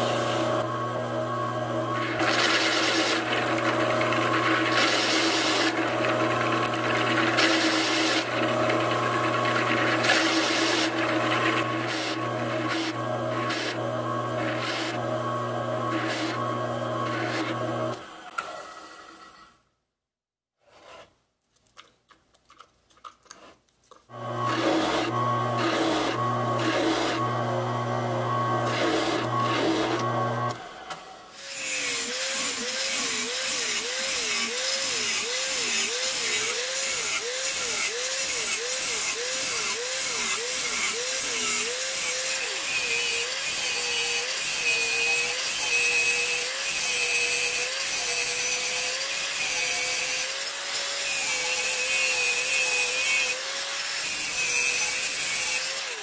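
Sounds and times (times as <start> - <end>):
angle grinder cutting steel: 0.0 - 19.5, 24.1 - 56.0
drill press boring steel: 1.9 - 19.3, 24.2 - 30.6.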